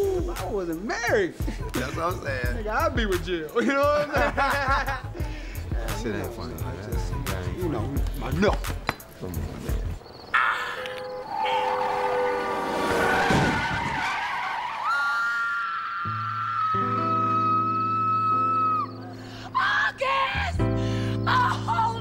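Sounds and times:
people yelling: 10.3 - 19.0.

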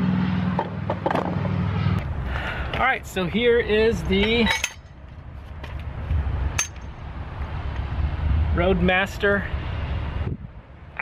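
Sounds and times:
sharp metallic clink: 4.2 - 5.0, 6.6 - 7.0
wind rumble on microphone: 5.2 - 10.8.

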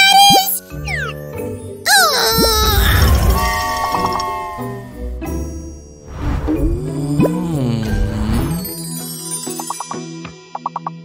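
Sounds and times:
background music: 0.0 - 11.0
cartoon wailing cry: 1.9 - 3.1.

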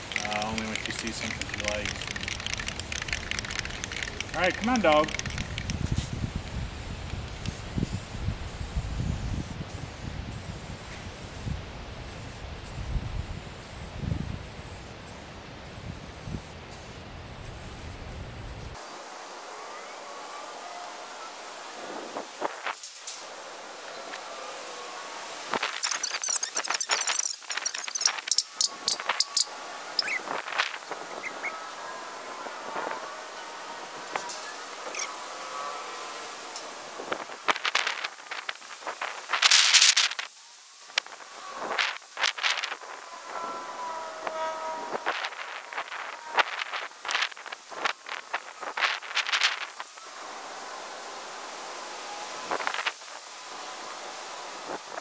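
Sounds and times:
spray paint can hissing: 0.0 - 6.3, 7.2 - 11.5, 14.5 - 17.9, 24.5 - 31.6, 37.0 - 42.8.

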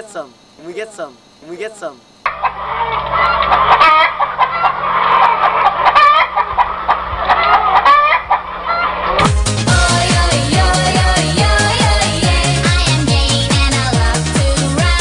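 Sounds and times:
chickens clucking and squawking: 2.2 - 13.4.

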